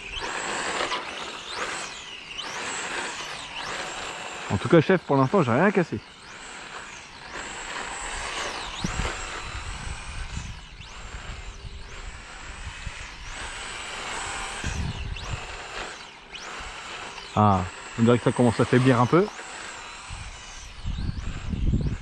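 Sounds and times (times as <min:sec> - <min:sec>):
electric motor whining: 0:00.0 - 0:22.0.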